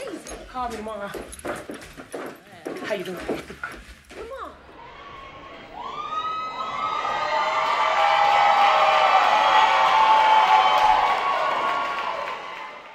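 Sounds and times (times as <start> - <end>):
audience cheering and screaming: 4.7 - 12.9.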